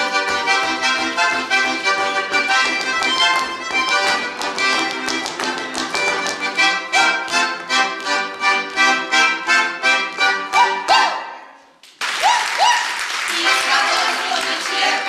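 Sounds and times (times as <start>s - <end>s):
folk dance music with accordion: 0.0s - 11.6s, 13.3s - 15.0s.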